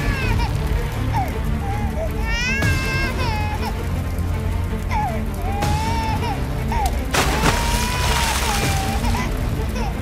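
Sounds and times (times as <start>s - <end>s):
water spraying: 6.9s - 9.8s.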